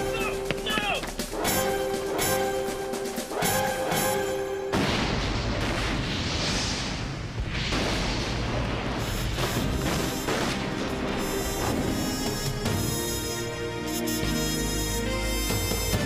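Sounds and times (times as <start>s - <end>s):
orchestral score music: 0.0s - 4.9s, 9.6s - 16.0s
large explosion rumble: 4.7s - 11.2s.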